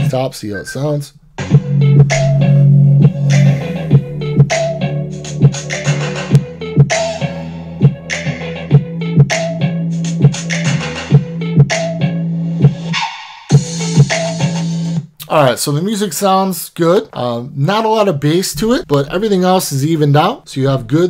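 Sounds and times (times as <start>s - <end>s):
song with heavy bass through speaker: 1.3s - 15.0s.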